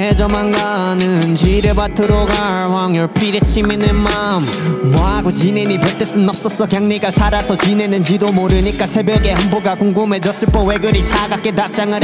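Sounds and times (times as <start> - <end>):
rapping over a beat: 0.0 - 12.0
deep kick drum: 1.4 - 2.3, 5.0 - 5.3, 8.5 - 9.5, 10.5 - 11.2.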